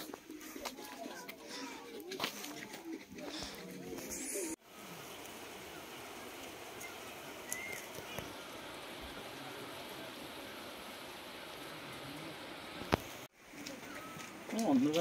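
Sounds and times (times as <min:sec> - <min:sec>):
faint outdoor rushing: 0:00.0 - 0:15.0
faint bird chirps: 0:06.8 - 0:08.2.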